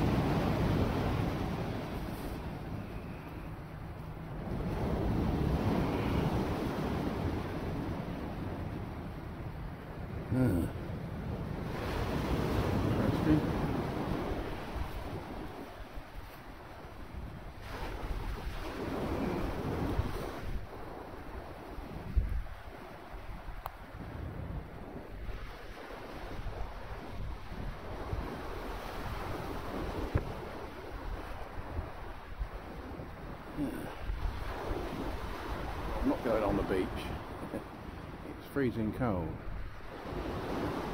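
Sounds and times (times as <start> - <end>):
waves washing onto shingle: 0.0 - 2.6, 4.4 - 8.4, 11.6 - 24.0, 32.7 - 38.4
wind buffeting microphone: 0.0 - 36.4.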